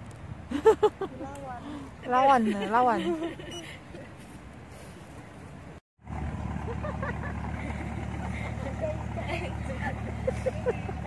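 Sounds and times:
motorboat engine humming: 0:05.6 - 0:11.0.

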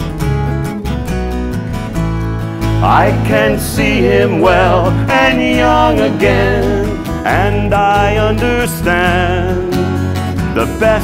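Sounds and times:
acoustic guitar strumming chords: 0:00.0 - 0:11.0
second guitar playing: 0:00.0 - 0:11.0.

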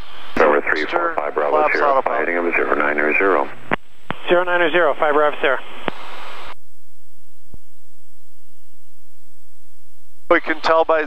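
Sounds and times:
aircraft engine and propeller drone: 0:00.0 - 0:06.2
radio hiss: 0:00.0 - 0:06.6.

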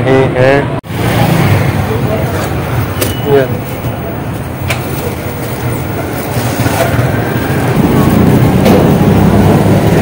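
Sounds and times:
street traffic engine rumble: 0:00.0 - 0:10.0.

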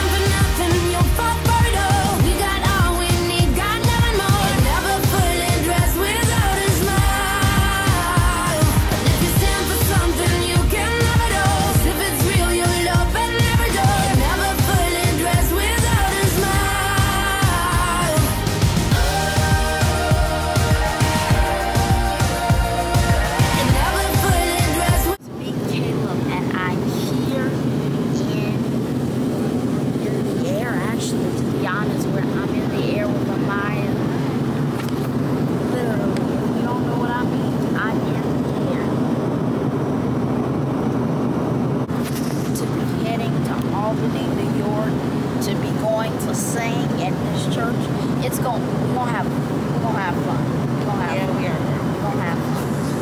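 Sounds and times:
voice: 0:00.0 - 0:18.3, 0:23.3 - 0:28.8, 0:29.9 - 0:39.2, 0:42.0 - 0:53.0
airliner cabin drone: 0:00.0 - 0:53.0.

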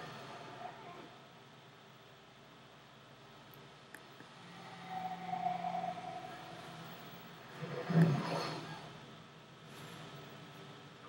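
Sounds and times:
swell of film score: 0:04.2 - 0:09.1.

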